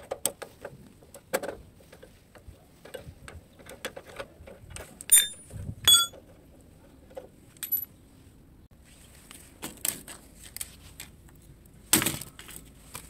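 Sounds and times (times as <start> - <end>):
metal tools clinking: 5.1 - 6.2, 7.6 - 7.9.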